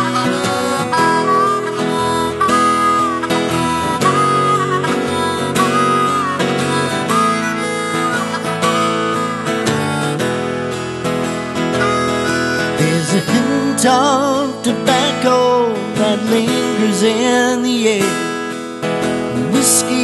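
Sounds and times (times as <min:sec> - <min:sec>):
harmonica solo with bent notes: 0:00.0 - 0:20.0
strummed acoustic guitar: 0:00.0 - 0:20.0.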